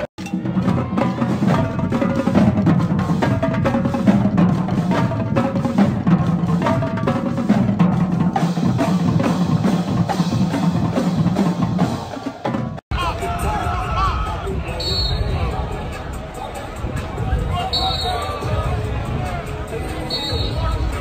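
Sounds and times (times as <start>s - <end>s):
marching drumline cadence: 0.0s - 21.0s.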